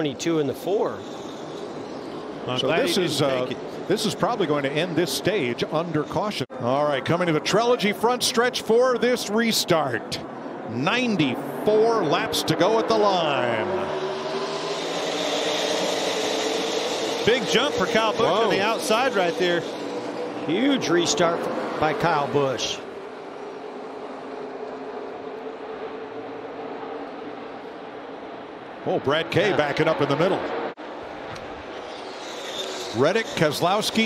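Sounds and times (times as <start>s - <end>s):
race car engines at full throttle: 0.0s - 34.0s.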